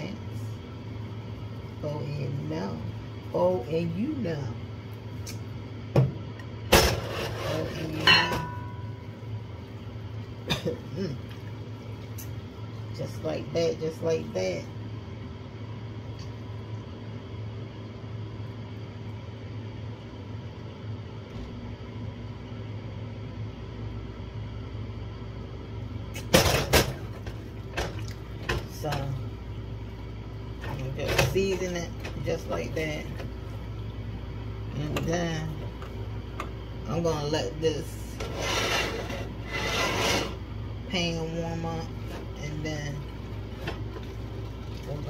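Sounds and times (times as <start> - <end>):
low room hum: 0.0 - 45.0.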